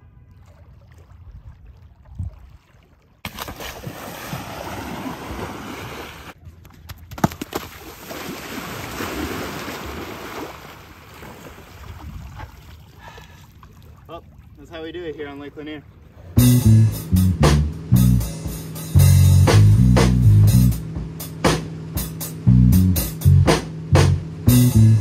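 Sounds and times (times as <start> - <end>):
water splashing: 0.0 - 16.4.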